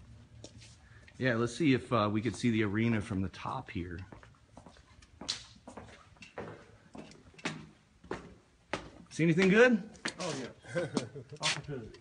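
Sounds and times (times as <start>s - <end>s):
footsteps on concrete stairs: 4.1s - 10.4s.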